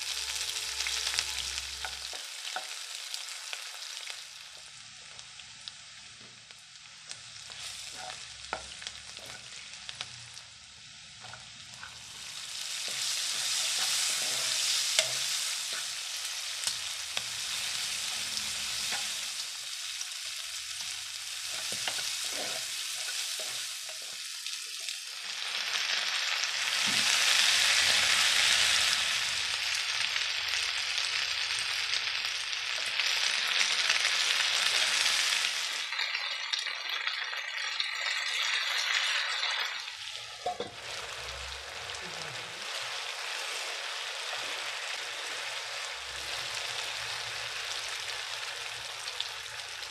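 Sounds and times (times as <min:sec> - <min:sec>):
spatula scraping and knocking wok: 0:00.0 - 0:02.9, 0:07.5 - 0:10.1, 0:11.2 - 0:25.0, 0:38.9 - 0:41.4
vegetables sizzling in oil: 0:00.0 - 0:49.9.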